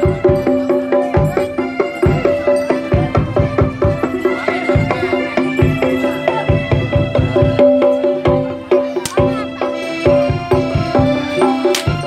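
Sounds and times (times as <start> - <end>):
rapid drum beats: 0.0 - 12.0.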